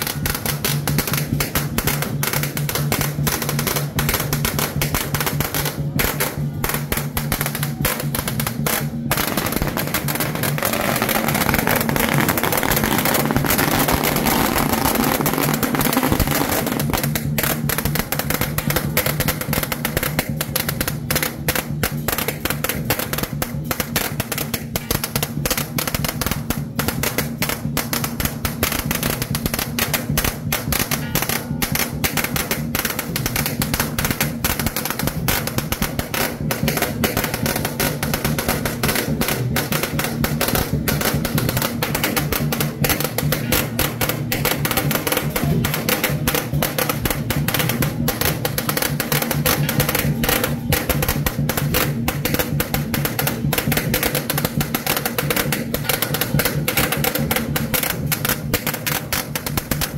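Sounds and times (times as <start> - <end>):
firecrackers crackling: 0.0 - 59.9.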